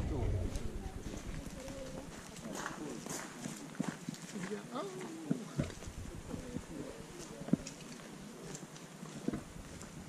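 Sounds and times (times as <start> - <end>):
indistinct voices talking: 0.0 - 8.6
footstep clicks: 0.5 - 10.0.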